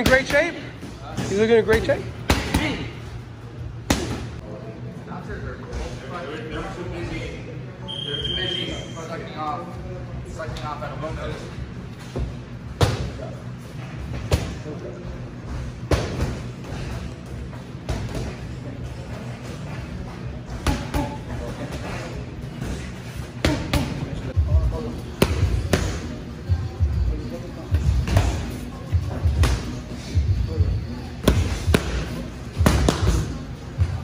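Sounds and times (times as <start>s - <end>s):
low gym hum: 0.0s - 34.0s
boxing gloves smacking pads: 31.2s - 33.4s.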